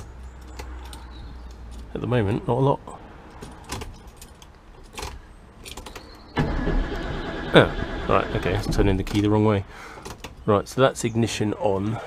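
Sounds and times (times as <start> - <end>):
car keys jingling: 3.2 - 6.2.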